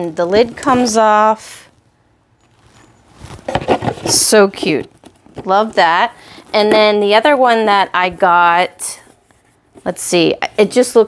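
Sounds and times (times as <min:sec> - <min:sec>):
cardboard box rustling and scraping: 0:03.2 - 0:04.8.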